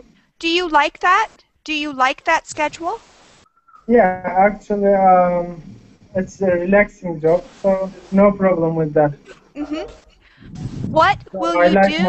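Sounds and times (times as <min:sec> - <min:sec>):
person laughing: 0:09.2 - 0:10.0.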